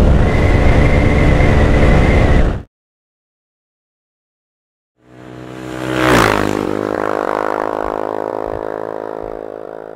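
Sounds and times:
steady droning tone: 6.9s - 9.9s.

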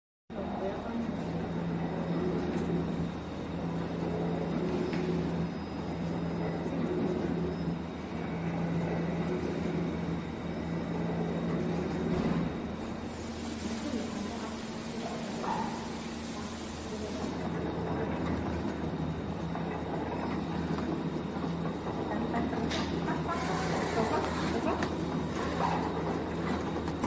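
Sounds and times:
low machine hum: 0.3s - 27.0s
packing machine running: 0.4s - 27.0s.

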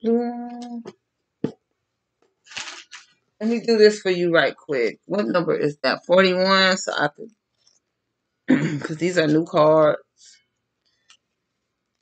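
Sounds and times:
soft card rustle: 2.5s - 3.2s.

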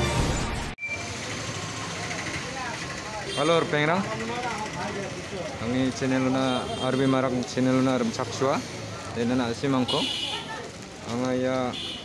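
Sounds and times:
traffic noise: 0.8s - 12.0s.

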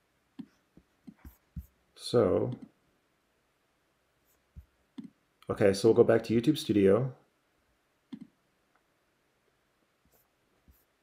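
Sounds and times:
computer mouse clicks: 4.6s - 5.2s, 8.1s - 8.4s.

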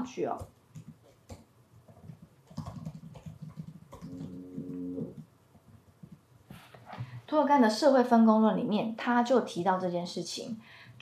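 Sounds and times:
quiet keyboard typing: 0.1s - 6.4s
low hum: 4.0s - 5.2s.

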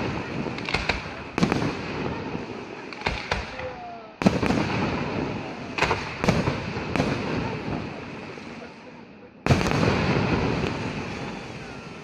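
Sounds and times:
firework crackle: 0.0s - 12.0s.

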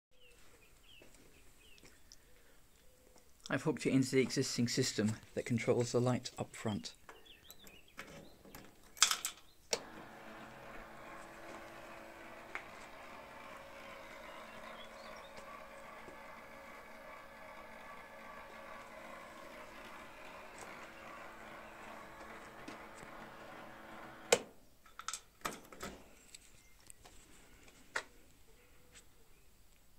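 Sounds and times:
rotating beacon motor whirring: 9.7s - 24.4s.

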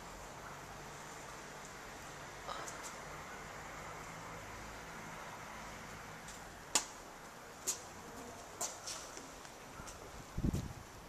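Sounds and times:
footsteps on hard paving: 7.6s - 10.6s.

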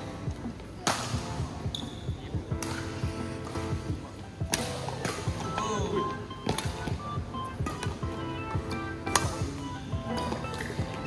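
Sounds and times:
background music: 0.0s - 11.0s
racket hitting shuttlecock: 0.8s - 1.2s, 2.6s - 3.6s, 4.5s - 5.4s, 6.4s - 6.9s, 9.1s - 9.6s.

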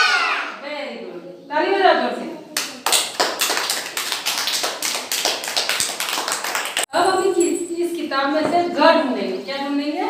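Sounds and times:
children clapping: 2.6s - 6.9s.

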